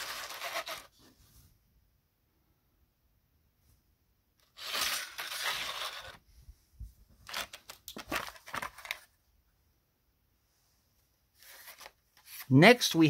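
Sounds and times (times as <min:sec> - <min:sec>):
paper rustling: 0:00.0 - 0:01.2, 0:04.4 - 0:06.2, 0:07.1 - 0:09.2, 0:11.4 - 0:12.6.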